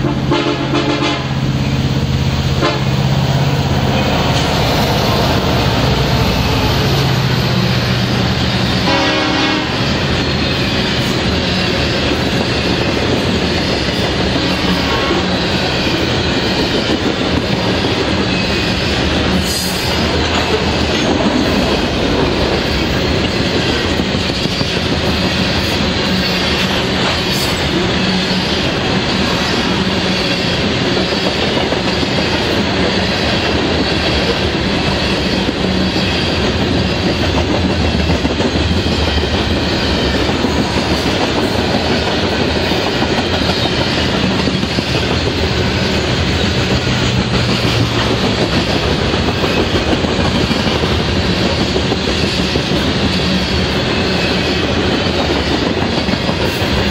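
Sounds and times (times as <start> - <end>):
freight train rolling past: 0.0 - 56.9.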